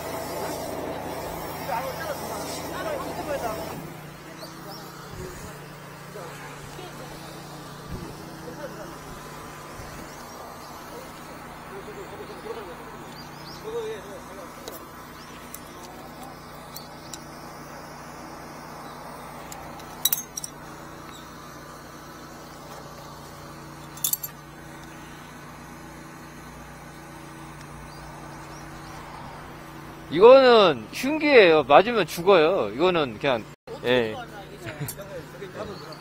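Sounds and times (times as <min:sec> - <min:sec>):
drain jetter engine running: 0:00.0 - 0:33.1
metal tools clinking: 0:19.5 - 0:20.6, 0:23.8 - 0:24.4.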